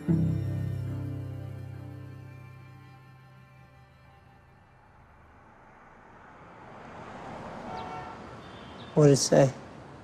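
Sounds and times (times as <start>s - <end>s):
street traffic noise: 0.0s - 10.0s
vehicle passing: 1.0s - 10.0s.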